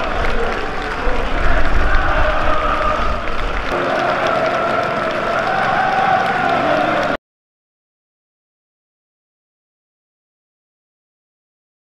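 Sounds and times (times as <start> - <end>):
crowd applauding and cheering: 0.0 - 7.2
crowd singing together: 0.0 - 7.2.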